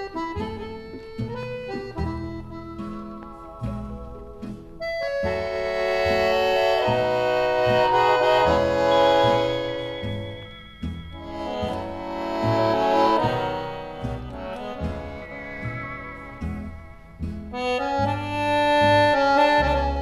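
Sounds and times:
accordion dance music: 0:00.0 - 0:20.0
steady bass notes: 0:00.0 - 0:20.0.

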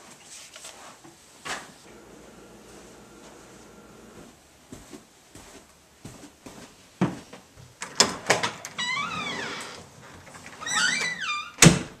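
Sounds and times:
door shutting with a thud: 0:11.6 - 0:12.0.

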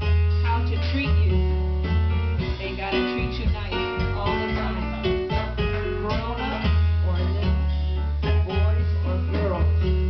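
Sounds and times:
deep sustained bass notes: 0:00.0 - 0:10.0
plucked guitar lines: 0:00.0 - 0:10.0.

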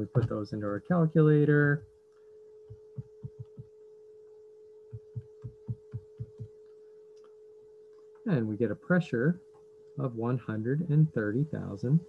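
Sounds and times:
faint hum: 0:00.0 - 0:12.0
calculator keys tapping: 0:02.7 - 0:03.6.

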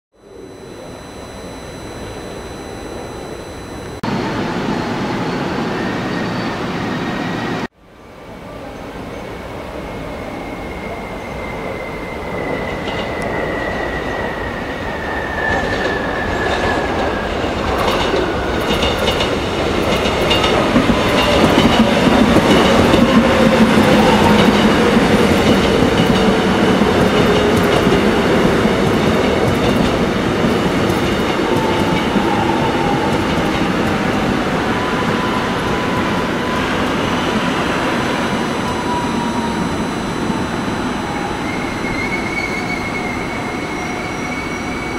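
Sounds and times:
electric train motor whine: 0:00.2 - 0:06.2, 0:18.2 - 0:44.9.

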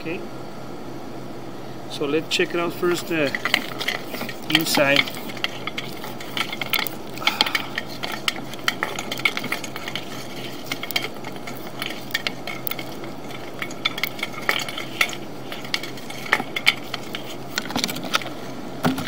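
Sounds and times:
cable clicking and scraping in pipe: 0:02.6 - 0:19.0.

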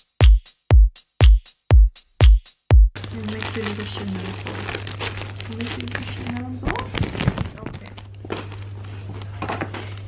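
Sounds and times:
plastic bag and tissue paper crinkling: 0:03.0 - 0:10.0.

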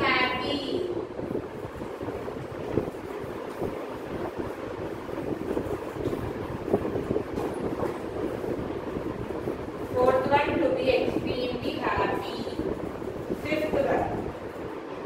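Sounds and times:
low background noise: 0:00.0 - 0:15.0.

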